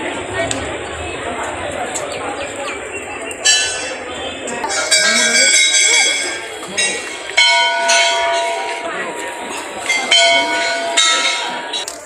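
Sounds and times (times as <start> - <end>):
crowd voices: 0.0 - 12.0
temple bells ringing: 2.3 - 12.0.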